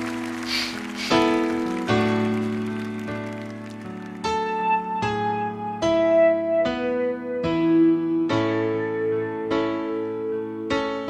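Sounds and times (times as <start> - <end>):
keyboard playing piano-like chords: 0.0 - 11.0.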